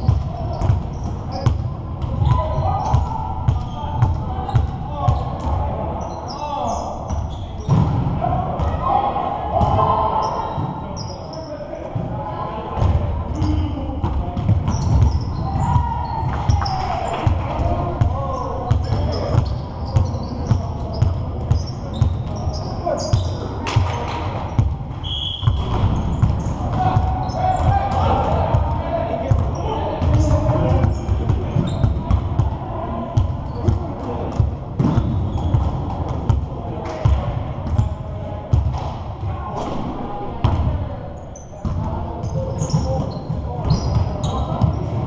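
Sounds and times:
sneakers squeaking: 0:00.0 - 0:08.0, 0:09.6 - 0:11.6, 0:12.8 - 0:13.8, 0:14.4 - 0:28.7, 0:29.3 - 0:36.3, 0:37.0 - 0:38.0, 0:40.4 - 0:45.0
players shouting indistinctly: 0:26.4 - 0:33.2
basketball bouncing: 0:30.0 - 0:32.5.

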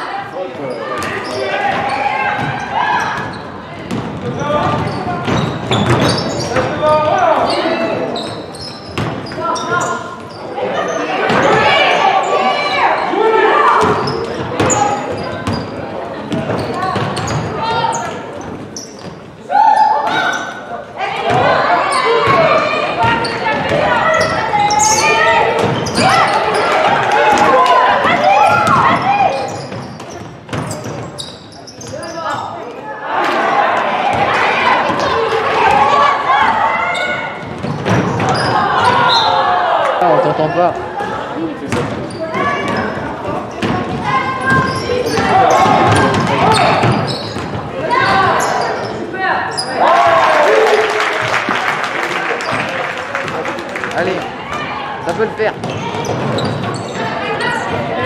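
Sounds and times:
basketball bouncing on wooden court: 0:03.2 - 0:06.7, 0:08.9 - 0:09.3, 0:43.6 - 0:48.2
people shouting: 0:10.7 - 0:14.0, 0:21.0 - 0:29.5, 0:33.0 - 0:37.4, 0:38.2 - 0:40.2, 0:44.0 - 0:47.1, 0:47.7 - 0:51.1.

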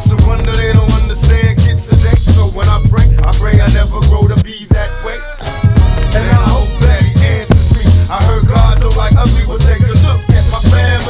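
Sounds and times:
bass-heavy drum beat: 0:00.0 - 0:11.0
person rapping: 0:00.0 - 0:11.0.

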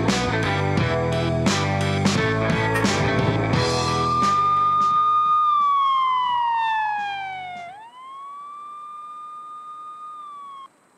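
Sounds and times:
theme music sting: 0:02.7 - 0:04.8
siren wail sliding in pitch: 0:02.8 - 0:10.7.

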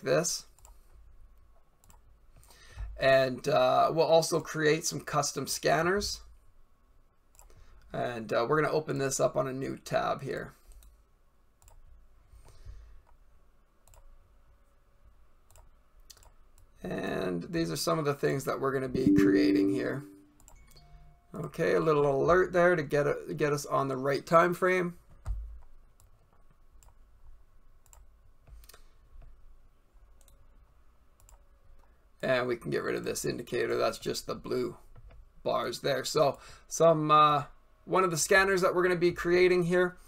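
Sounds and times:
low steady background hum: 0:00.0 - 0:40.0
computer mouse clicks: 0:00.5 - 0:00.9, 0:01.8 - 0:02.6, 0:07.3 - 0:07.6, 0:11.6 - 0:13.2, 0:13.8 - 0:14.1, 0:15.4 - 0:16.7, 0:25.2 - 0:27.0, 0:27.8 - 0:29.4, 0:30.2 - 0:30.4, 0:31.2 - 0:31.4
faint computer mouse clicks: 0:13.8 - 0:14.1, 0:27.8 - 0:29.3.

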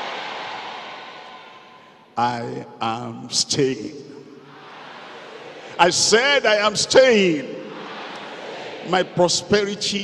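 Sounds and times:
congregation applauding: 0:00.0 - 0:01.9.

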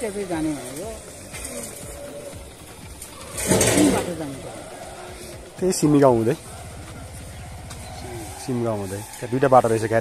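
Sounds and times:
small motorcycle engine passing: 0:00.0 - 0:10.0.

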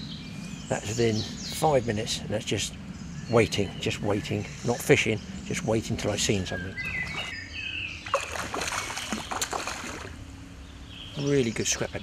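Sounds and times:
fish splashing in water: 0:08.0 - 0:10.2.

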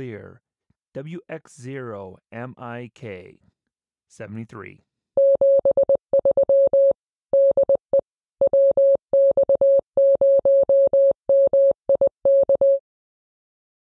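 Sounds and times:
morse code beeps: 0:05.2 - 0:12.8.

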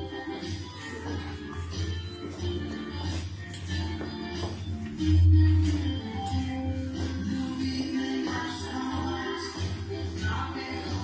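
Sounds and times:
children's dance song music: 0:00.0 - 0:11.0.

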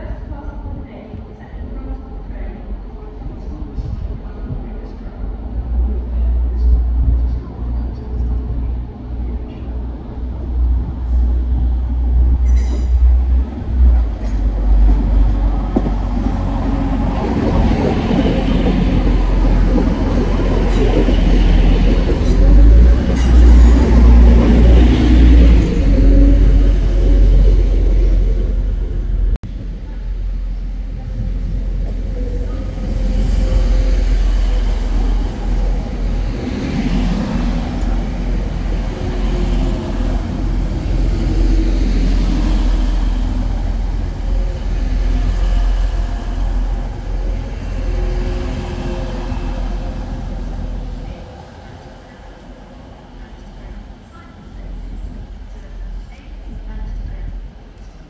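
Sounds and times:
diesel train engine rumble: 0:00.0 - 0:58.0.

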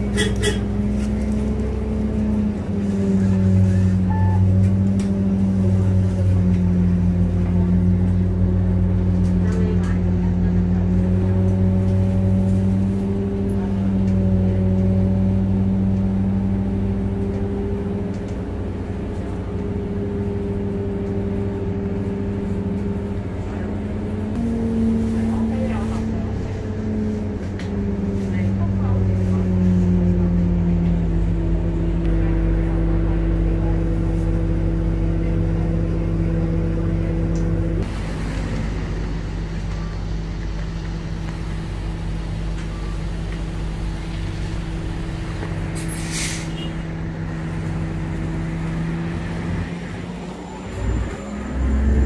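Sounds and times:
bus engine hum and rumble: 0:00.0 - 0:52.0
air brake hiss: 0:45.8 - 0:46.6.

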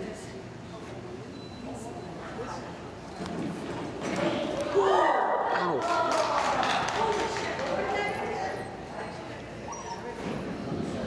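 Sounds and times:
dog yelping: 0:09.7 - 0:10.2.

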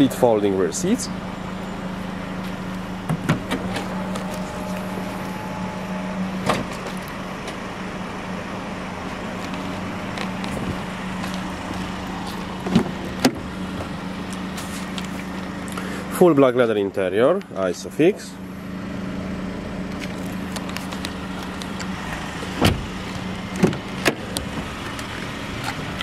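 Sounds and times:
steady low hum: 0:00.0 - 0:16.4
tailgate motor whine: 0:01.2 - 0:16.1, 0:19.2 - 0:26.0
tailgate latching knock: 0:03.1 - 0:04.5, 0:06.4 - 0:07.0, 0:12.6 - 0:13.9, 0:22.6 - 0:22.9.

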